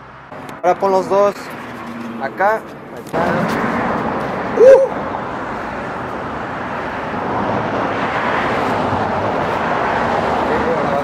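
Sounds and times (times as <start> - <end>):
street traffic roar: 0.0 - 11.0.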